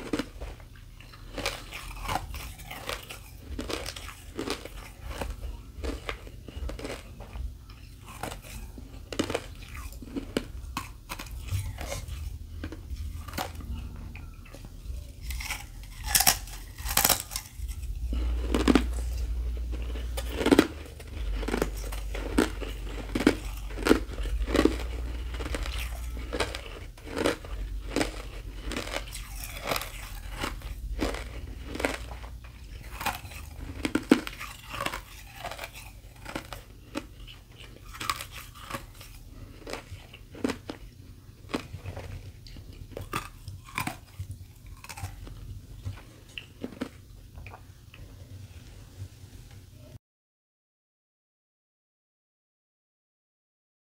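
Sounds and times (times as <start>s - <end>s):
crisp crunches of chewing ice: 0.0s - 13.7s, 15.2s - 47.6s.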